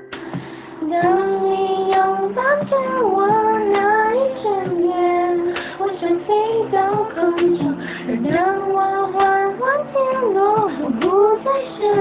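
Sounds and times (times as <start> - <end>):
women singing pop ballad: 0.0 - 12.0.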